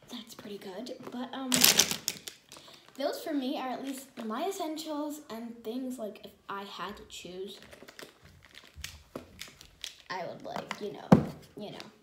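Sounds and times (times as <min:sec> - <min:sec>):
pens clicking and rustling: 0:01.5 - 0:02.6.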